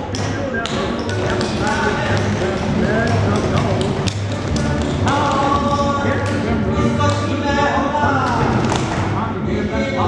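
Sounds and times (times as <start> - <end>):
person chanting rhythmically: 0.0 - 10.0.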